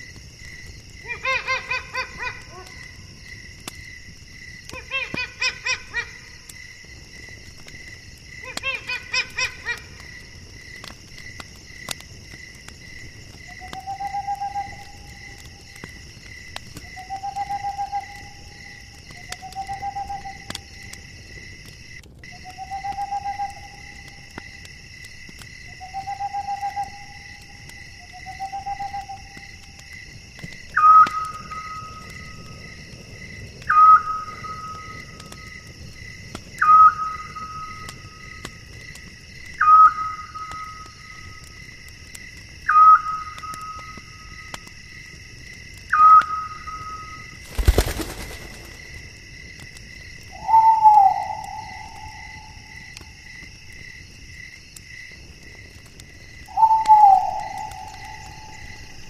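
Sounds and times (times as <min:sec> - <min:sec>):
insects chorus: 0:00.0 - 0:59.0.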